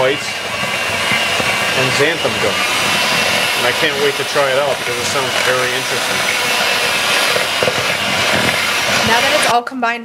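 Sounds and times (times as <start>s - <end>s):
electric hand mixer running: 0.0s - 9.6s.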